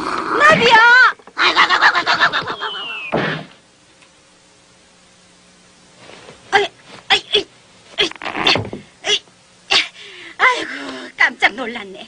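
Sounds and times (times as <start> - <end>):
loud wavering cry: 1.4 - 3.2.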